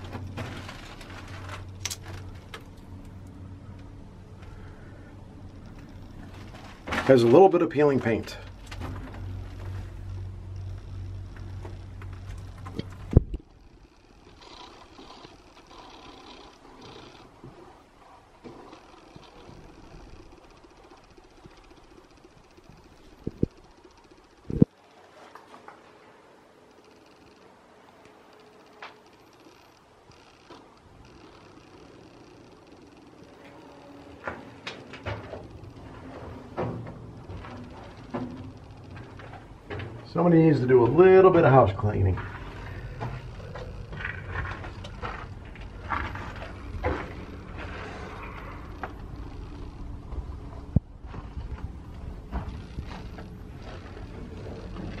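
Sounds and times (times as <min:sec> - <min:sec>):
low rumble: 0:00.0 - 0:18.0, 0:35.2 - 0:55.0.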